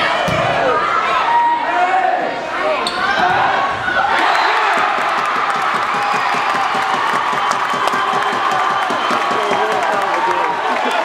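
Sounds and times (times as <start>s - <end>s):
crowd cheering and clapping: 4.0s - 11.0s.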